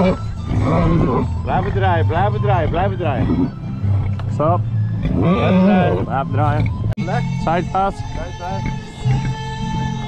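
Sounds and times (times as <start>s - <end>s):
music with long held notes: 0.0s - 10.0s.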